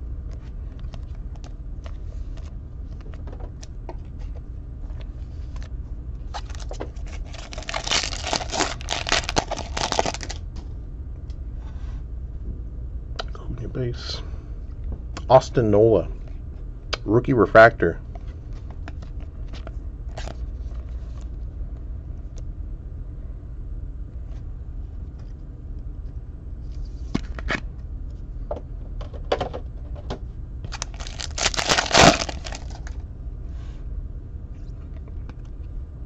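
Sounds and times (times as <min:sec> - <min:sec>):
steady low hum: 0:00.0 - 0:36.0
foil card pack tearing: 0:06.3 - 0:10.4, 0:30.7 - 0:33.0.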